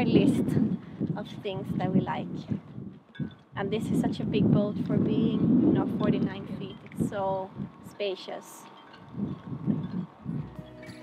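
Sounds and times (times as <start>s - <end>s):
wind buffeting microphone: 0.0s - 8.1s, 8.7s - 11.0s
background music: 10.3s - 11.0s.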